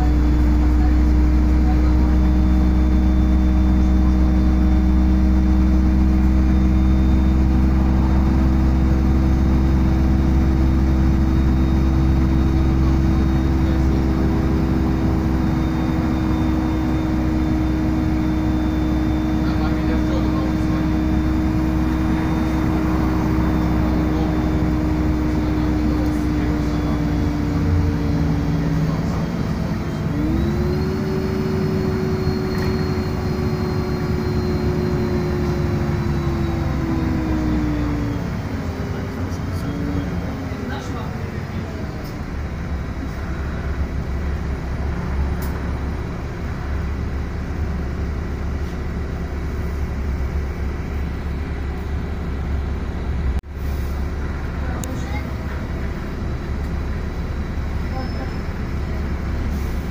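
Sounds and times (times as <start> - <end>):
bus engine drone with whine: 0.0 - 59.9.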